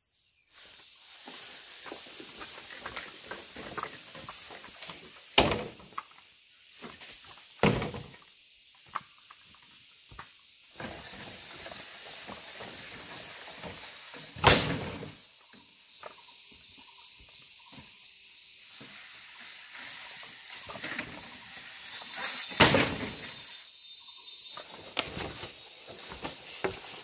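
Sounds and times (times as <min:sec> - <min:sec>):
faint high insect drone: 0:00.0 - 0:27.0
footsteps through rustling undergrowth: 0:00.6 - 0:05.4, 0:24.5 - 0:27.0.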